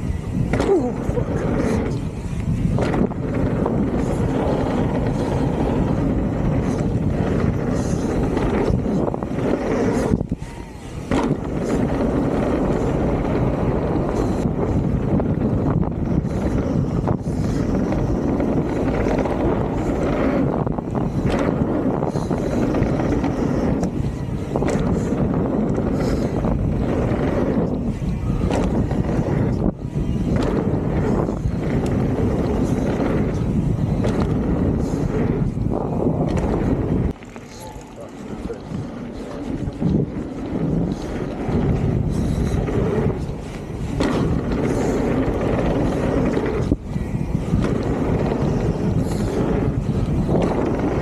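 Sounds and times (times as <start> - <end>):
tyres rumbling on dirt: 0.0 - 51.0
wind on microphone: 0.0 - 51.0
bike knocking over bumps: 0.4 - 37.6, 39.0 - 51.0.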